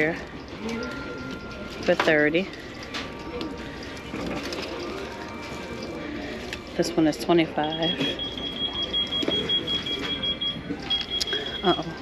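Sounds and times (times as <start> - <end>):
high-pitched electronic alarm: 7.6 - 12.0.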